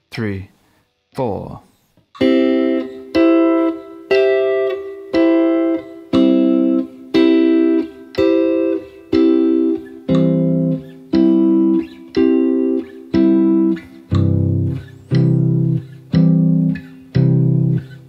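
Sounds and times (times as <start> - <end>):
clean electric guitar chords: 2.2 - 18.0
metronome ticking: 2.2 - 18.0.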